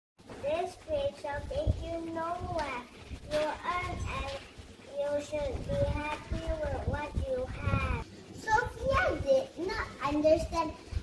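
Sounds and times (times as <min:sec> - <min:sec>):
young girl speaking: 0:00.3 - 0:11.0.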